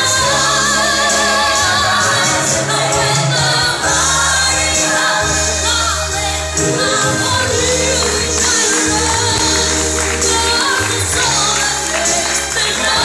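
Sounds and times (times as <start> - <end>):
instrumental backing track: 0.0 - 13.0.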